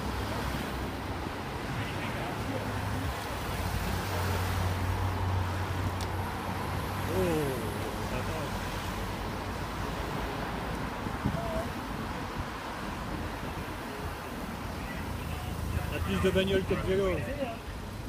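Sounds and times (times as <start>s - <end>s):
cars passing: 0.0s - 18.0s
road noise: 0.0s - 18.0s
person shouting: 7.1s - 7.8s.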